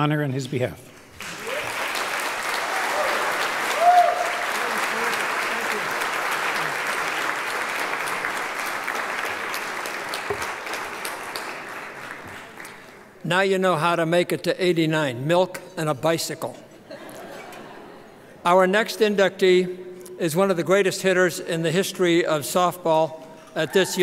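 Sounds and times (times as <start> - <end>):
audience applauding: 1.1 - 13.1.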